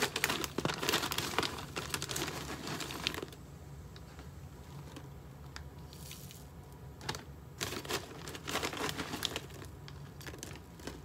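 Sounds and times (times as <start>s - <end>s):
plastic bag crinkling: 0.0s - 3.4s, 5.8s - 11.0s.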